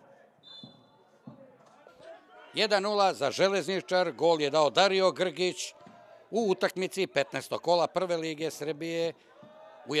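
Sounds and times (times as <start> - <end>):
referee's whistle blast: 0.4 - 0.9.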